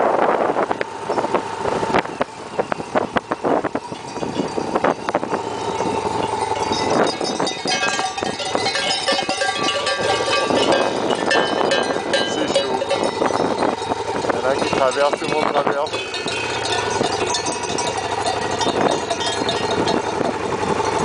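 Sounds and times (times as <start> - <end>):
sheep bells clanking: 2.1 - 21.0.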